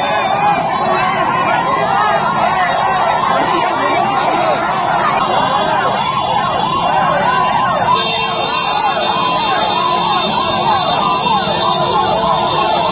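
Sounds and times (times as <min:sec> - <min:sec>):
crowd noise: 0:00.0 - 0:12.9
vehicle siren wailing: 0:00.0 - 0:12.9.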